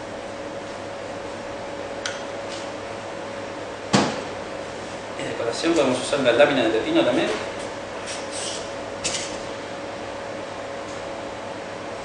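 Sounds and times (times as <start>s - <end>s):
steady background hum: 0.0s - 12.0s.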